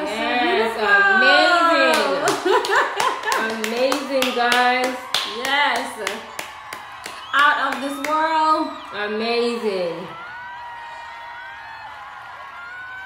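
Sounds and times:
hands clapping: 1.8 - 8.9.

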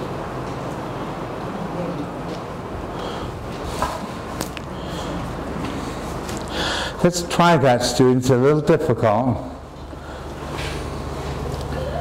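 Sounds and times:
classroom room noise: 0.0 - 12.0
man's intake of breath: 6.5 - 7.0.

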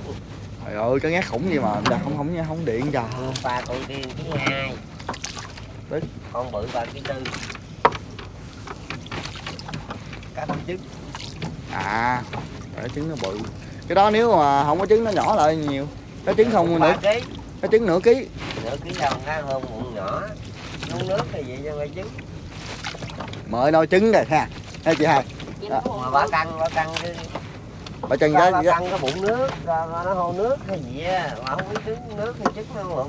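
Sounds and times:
people talking: 0.0 - 4.8, 5.9 - 7.4, 11.7 - 22.2, 23.5 - 27.3, 28.0 - 33.0
low steady rumble: 0.0 - 33.0
wet net hauled over boat side: 0.0 - 33.0
water dripping and splashing: 1.2 - 33.0.

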